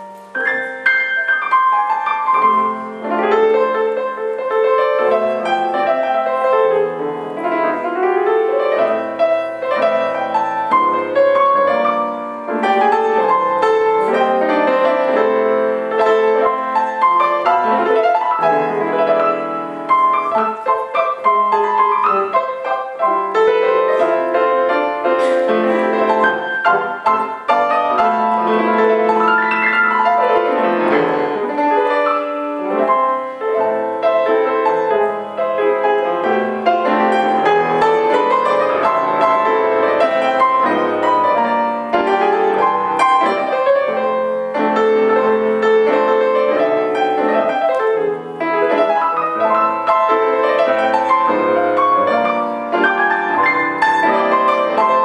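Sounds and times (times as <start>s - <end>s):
jazz piano: 0.0s - 55.0s.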